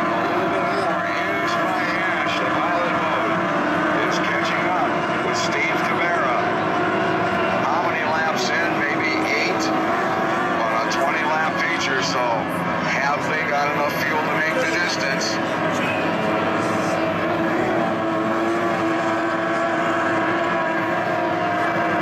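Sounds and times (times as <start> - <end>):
racing boat engines whining: 0.0 - 22.0.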